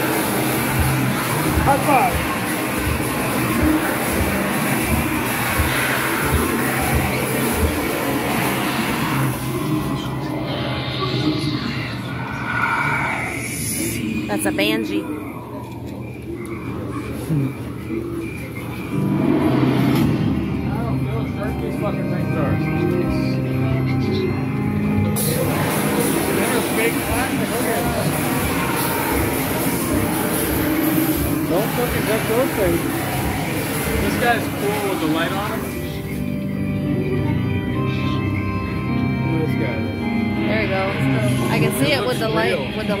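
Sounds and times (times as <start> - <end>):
indistinct voices: 0.0 - 43.0
low rumbling ambient effects: 0.0 - 43.0
noisy background: 0.0 - 43.0.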